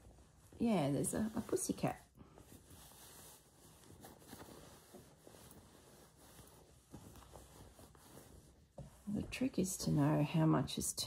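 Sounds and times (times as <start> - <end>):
faint rustling of cloth: 0.0 - 11.0.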